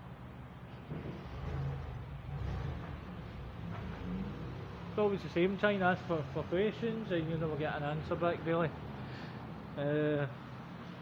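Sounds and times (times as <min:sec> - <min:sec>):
passing vehicle engine rumble: 0:00.1 - 0:09.8.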